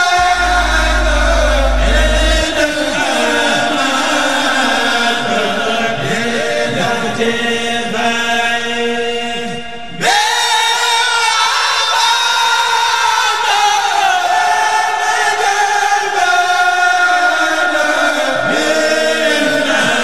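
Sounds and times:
men chanting together: 0.0 - 20.0.

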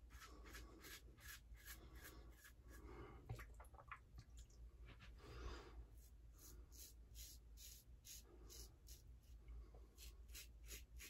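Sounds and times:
shaving brush swishing: 0.0 - 2.8.

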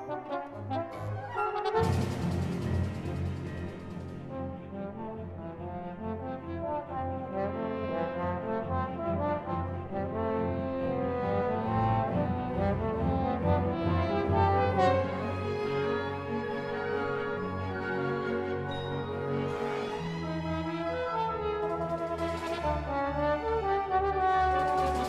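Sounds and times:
symphony orchestra: 0.0 - 25.0
trombones playing sustained lines: 0.0 - 25.0.

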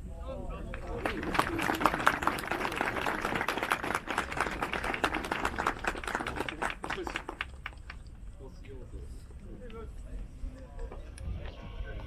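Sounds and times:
voices: 0.0 - 12.0
group of people clapping: 0.7 - 8.1.

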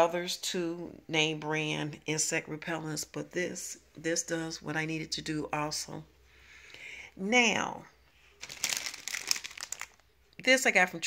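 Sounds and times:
plastic packaging crinkling: 8.3 - 10.1.

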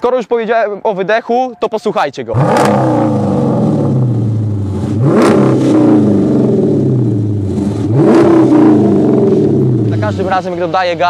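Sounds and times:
car engine idling and revving: 2.3 - 11.0.

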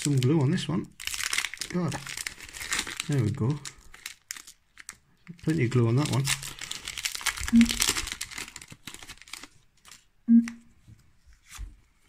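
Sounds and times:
foil wrapper crinkling and tearing: 0.0 - 10.1.

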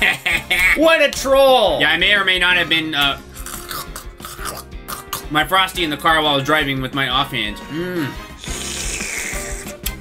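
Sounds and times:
soft background music: 0.0 - 10.0
person saying uh: 7.7 - 8.2.

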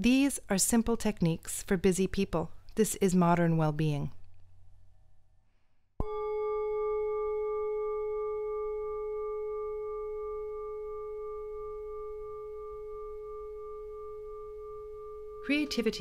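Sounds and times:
singing bowl ringing: 6.0 - 16.0.

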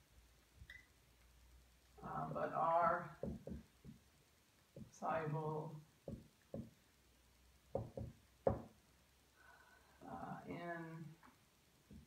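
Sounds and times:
marker tapping on whiteboard: 6.0 - 6.8, 7.7 - 8.7.

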